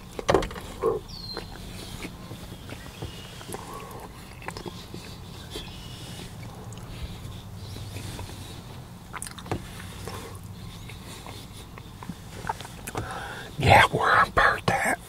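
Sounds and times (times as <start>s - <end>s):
chewing with wet mouth clicks: 0.0s - 13.4s
steady low hum: 0.0s - 15.0s.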